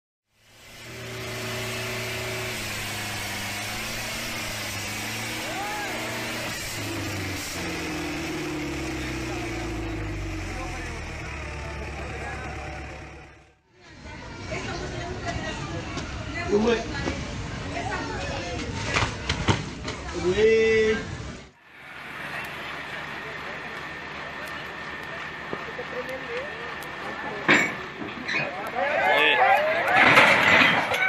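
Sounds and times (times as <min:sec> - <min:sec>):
diesel tractor engines working hard: 0:00.4 - 0:13.7, 0:21.6 - 0:31.0
crowd voices: 0:01.4 - 0:20.0, 0:21.6 - 0:31.0.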